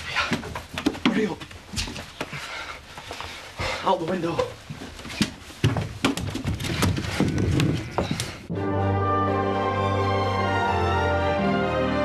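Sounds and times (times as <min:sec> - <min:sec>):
knocks and bumps: 0:04.1 - 0:08.5.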